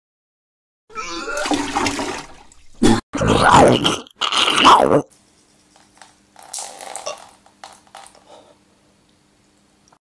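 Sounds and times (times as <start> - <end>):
person vomiting: 0.9 - 1.7, 2.8 - 5.1, 6.5 - 7.4
splashing liquid: 1.3 - 3.0.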